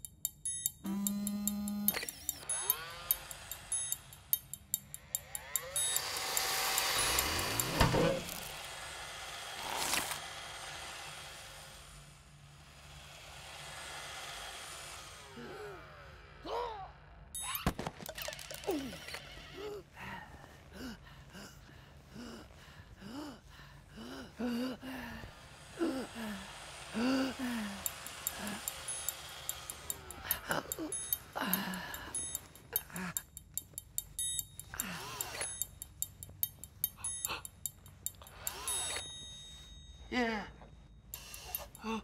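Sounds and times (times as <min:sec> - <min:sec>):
sharp ticks and clicks: 0:00.0 - 0:09.3, 0:26.5 - 0:39.3, 0:41.1 - 0:42.0
sweeping tones: 0:00.4 - 0:08.9, 0:25.7 - 0:40.2
man whimpering moans: 0:24.0 - 0:28.6, 0:29.9 - 0:33.2.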